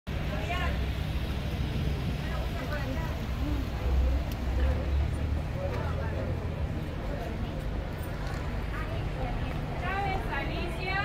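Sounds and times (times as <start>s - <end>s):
crowd talking outdoors: 0.1s - 11.0s.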